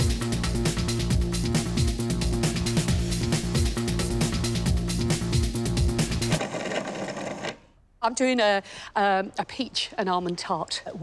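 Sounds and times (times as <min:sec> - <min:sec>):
background music with steady beat: 0:00.0 - 0:06.4
faint background noise: 0:07.6 - 0:11.0.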